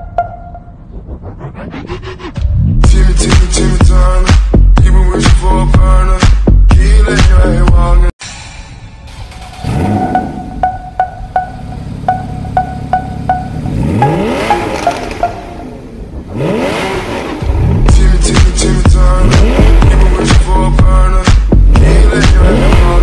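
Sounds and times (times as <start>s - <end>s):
ticking beat music: 0.0s - 1.2s, 2.4s - 7.8s, 9.7s - 15.8s, 17.8s - 23.0s
loud bass-heavy music: 0.0s - 23.0s
car engine revving: 9.1s - 23.0s.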